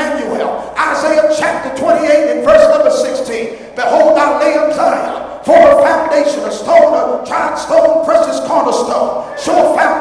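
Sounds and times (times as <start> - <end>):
man preaching in shouts: 0.0 - 10.0.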